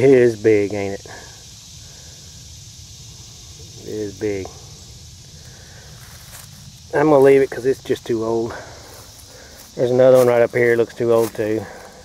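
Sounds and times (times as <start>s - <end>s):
faint high-pitched hiss: 0.0s - 12.0s.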